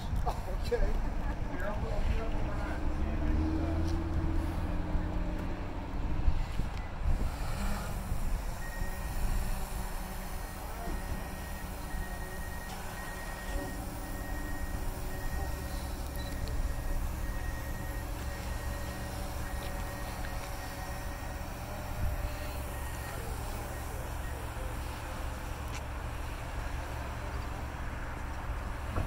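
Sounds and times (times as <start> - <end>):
drone propellers whirring: 2.8 - 27.7.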